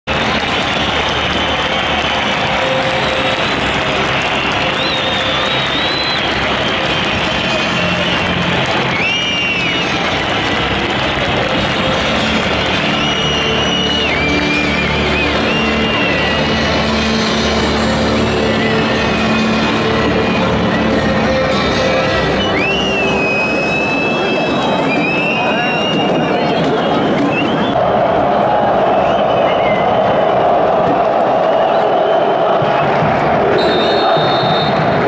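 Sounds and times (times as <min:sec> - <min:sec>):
music playing: 0:00.0 - 0:35.0
stadium crowd noise: 0:00.0 - 0:35.0
high whistles: 0:04.2 - 0:10.1, 0:12.7 - 0:16.8, 0:22.3 - 0:27.8, 0:28.9 - 0:30.6.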